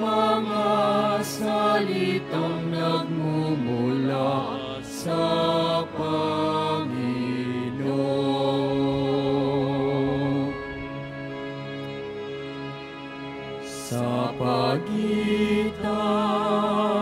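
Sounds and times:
slow hymn singing: 0.0s - 11.1s, 13.6s - 17.0s.

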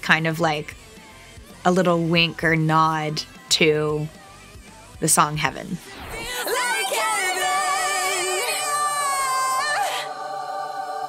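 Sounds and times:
choir-like layered vocals: 0.5s - 11.0s.

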